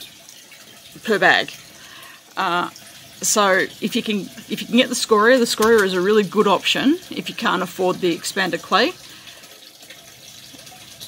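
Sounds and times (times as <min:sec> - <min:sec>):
water running and trickling: 0:00.0 - 0:11.0.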